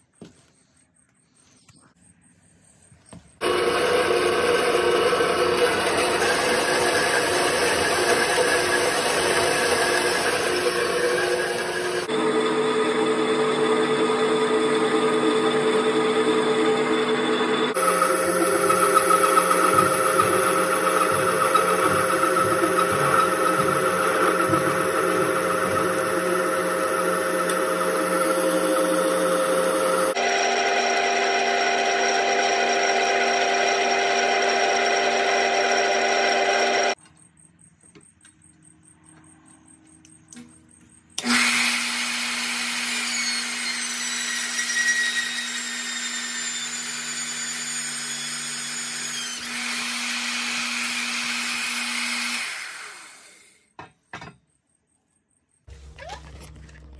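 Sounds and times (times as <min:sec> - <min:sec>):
bandsaw cutting steel pipe: 0:03.4 - 0:37.0, 0:41.2 - 0:53.6
metal lathe turning steel bar: 0:03.4 - 0:37.0
milling machine cutting steel: 0:03.4 - 0:37.0.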